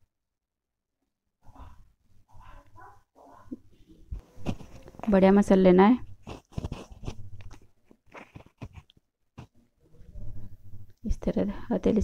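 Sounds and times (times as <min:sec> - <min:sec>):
hand kneading dough in a pan: 0:03.7 - 0:09.6.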